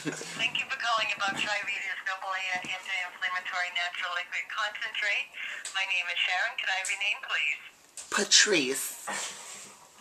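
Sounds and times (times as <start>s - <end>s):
person talking on telephone: 0.4s - 8.9s.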